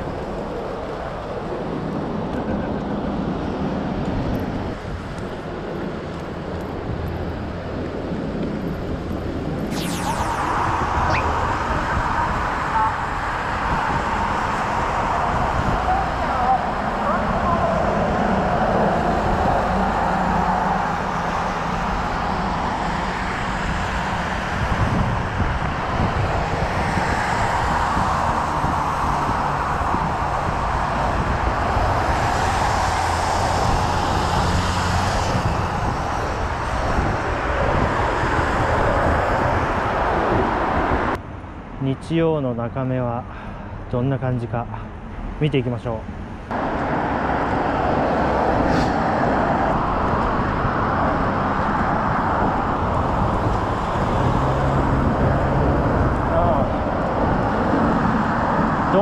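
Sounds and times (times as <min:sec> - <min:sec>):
road traffic noise: 0:00.0 - 0:42.4, 0:43.0 - 0:59.0.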